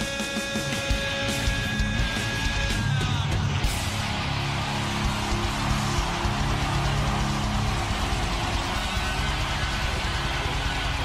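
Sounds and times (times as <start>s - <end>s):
distorted electric guitar: 0.0s - 11.0s
loud rock music: 0.0s - 11.0s.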